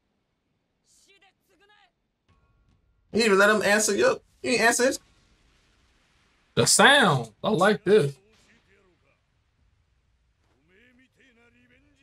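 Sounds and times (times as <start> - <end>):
faint distant cartoon dialogue: 3.2 - 5.0, 6.6 - 9.2
man's voice: 3.2 - 5.0, 6.6 - 8.2.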